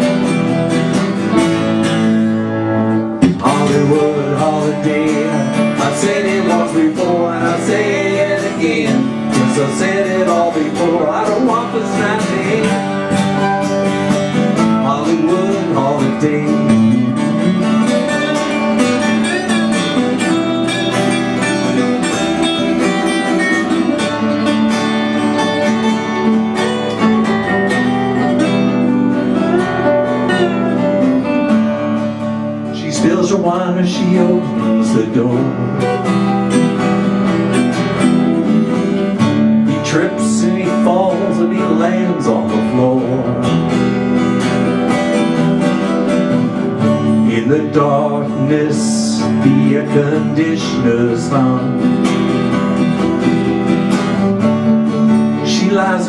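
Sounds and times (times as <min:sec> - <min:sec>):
acoustic guitars strumming: 0:00.0 - 0:56.0.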